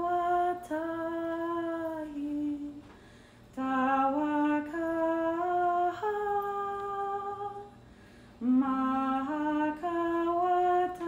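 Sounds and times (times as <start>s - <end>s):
person humming: 8.4s - 11.0s.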